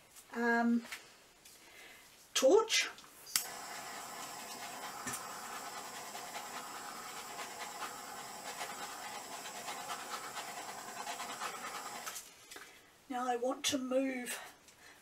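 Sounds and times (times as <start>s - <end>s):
butane torch hissing: 3.4s - 12.2s.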